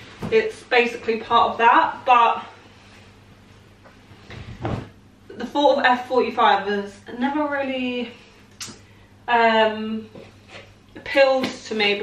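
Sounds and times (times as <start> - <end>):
coat thumping on seat: 4.4 - 4.9.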